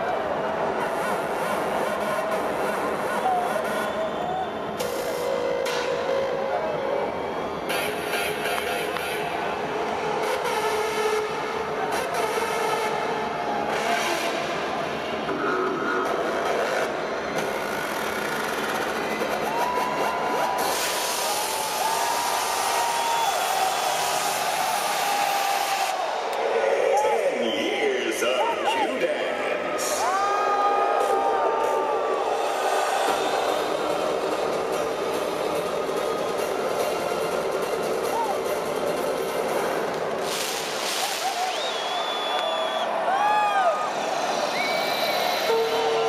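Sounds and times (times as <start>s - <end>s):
crowd chatter and shouting: 0.0s - 46.0s
whistles: 3.2s - 4.9s, 41.0s - 43.1s, 44.4s - 45.9s.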